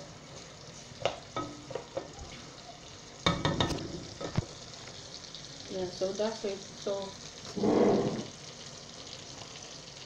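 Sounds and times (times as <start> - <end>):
onions sizzling in oil: 0.0 - 10.0.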